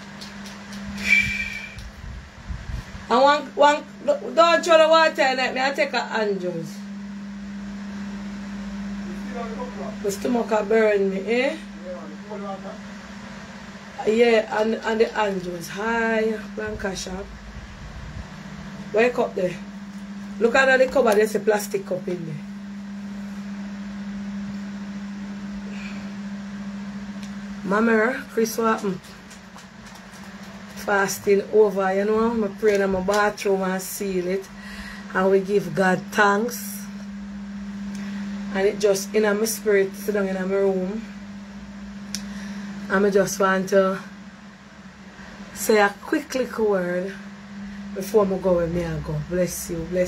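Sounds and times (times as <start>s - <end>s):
steady low hum: 0.0s - 50.0s
bottle hiss with whistle tone: 1.0s - 1.8s.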